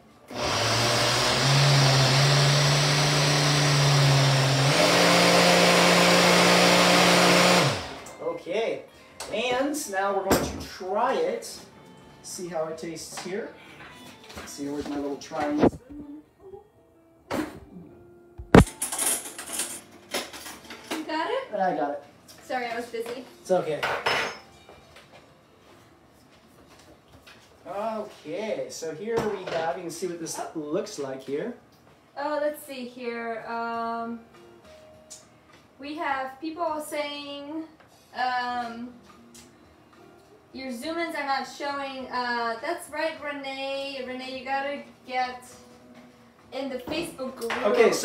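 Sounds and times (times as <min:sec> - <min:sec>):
blender running: 0:00.3 - 0:08.1.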